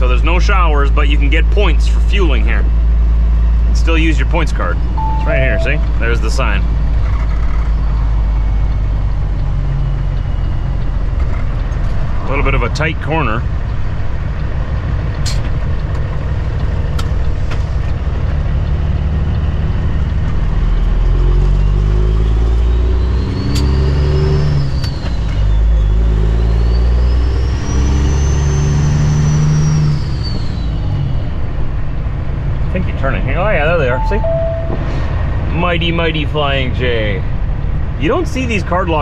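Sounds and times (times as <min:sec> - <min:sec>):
diesel truck engine accelerating: 0:06.1 - 0:39.0.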